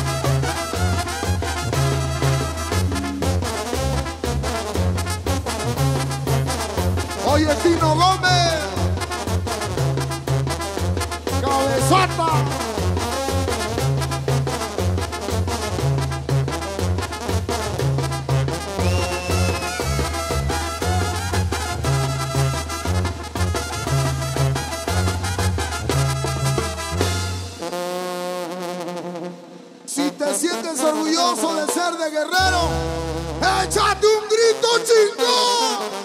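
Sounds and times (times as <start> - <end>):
bass guitar: 0.0 - 27.6, 32.4 - 34.1
brass band playing: 0.0 - 36.0
drums: 0.0 - 36.0.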